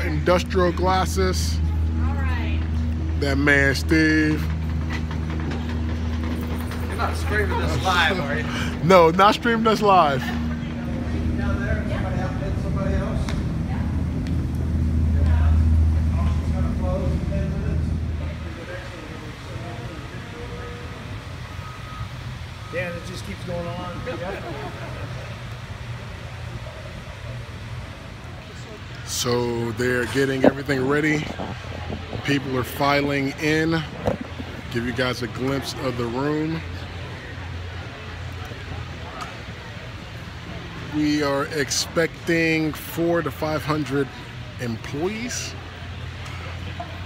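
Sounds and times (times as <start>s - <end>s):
electric wheelchair motors humming: 0.0s - 41.0s.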